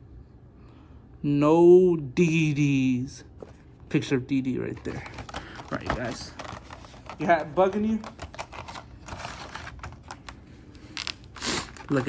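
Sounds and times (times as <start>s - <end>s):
cardboard box and plastic insert handled: 4.8s - 10.4s.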